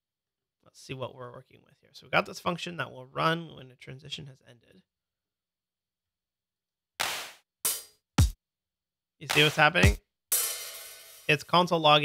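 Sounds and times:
drum machine hand clap: 7.0 - 8.4, 9.2 - 10.6
drum machine hi-hat hit: 7.0 - 8.4, 9.2 - 11.4.

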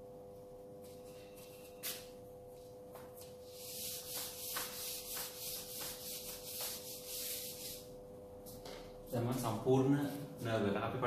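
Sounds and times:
eraser rubbing on whiteboard: 3.2 - 7.9.

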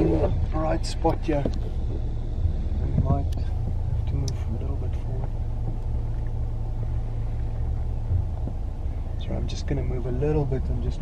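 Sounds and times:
car engine low rumble: 0.0 - 11.0
low bump: 0.0 - 11.0.

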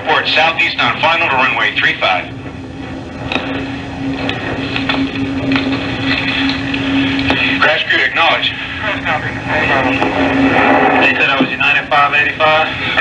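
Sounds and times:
steady hum: 0.0 - 13.0
radio hiss: 6.0 - 13.0
indistinct radio voices: 6.1 - 13.0.

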